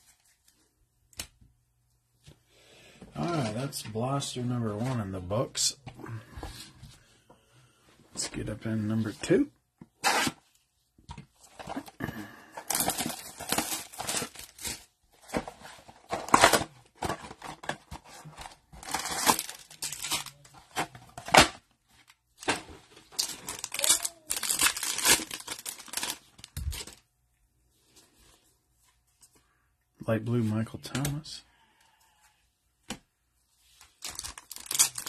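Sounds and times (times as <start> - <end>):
packaging ripping and crinkling: 12.7 - 14.9, 18.8 - 21.5, 22.4 - 27.0, 34.0 - 35.0.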